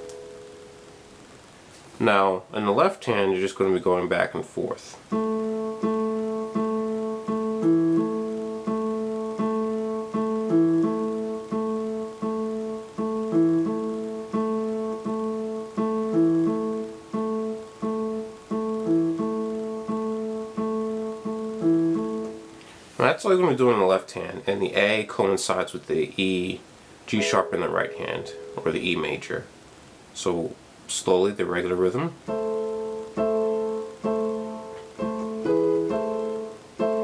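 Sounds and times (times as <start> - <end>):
keyboard piano bass line: 5.1 - 22.6, 27.2 - 29.4, 32.2 - 37.0.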